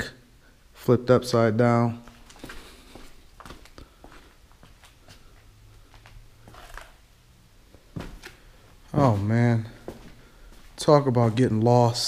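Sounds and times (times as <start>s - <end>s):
footsteps on debris: 2.1s - 5.2s.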